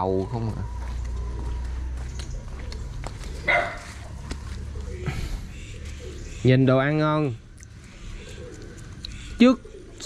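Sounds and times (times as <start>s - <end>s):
dog barking: 3.4s - 4.1s.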